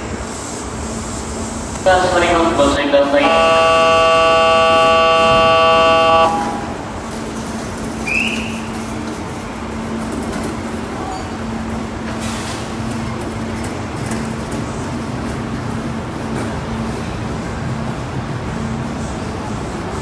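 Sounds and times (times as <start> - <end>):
train departure warning chord: 1.8 - 7.1.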